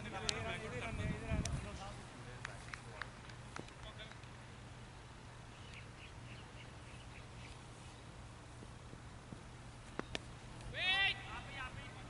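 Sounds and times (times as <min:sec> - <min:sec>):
person shouting: 0:10.7 - 0:11.8.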